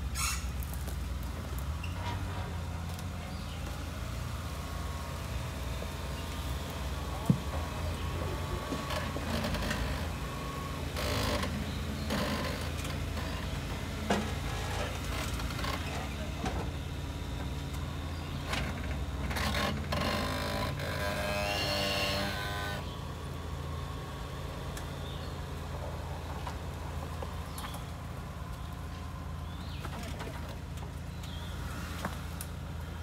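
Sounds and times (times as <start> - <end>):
engine running low: 0.0 - 33.0.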